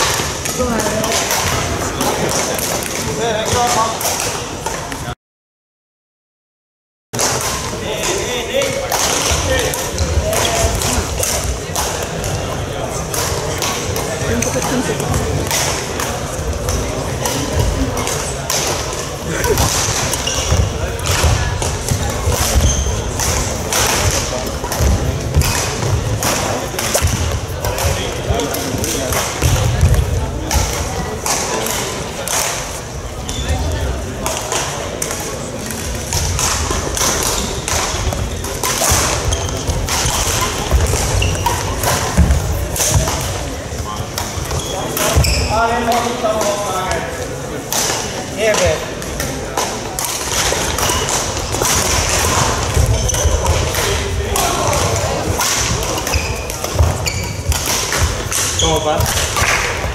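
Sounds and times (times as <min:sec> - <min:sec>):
racket hitting shuttlecock: 0:00.0 - 0:04.9, 0:07.2 - 0:32.7, 0:34.2 - 0:46.7, 0:47.7 - 0:59.9.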